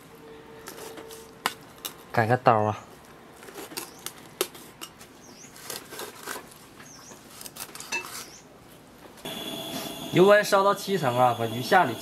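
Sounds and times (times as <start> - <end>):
steady hiss: 9.2 - 12.0.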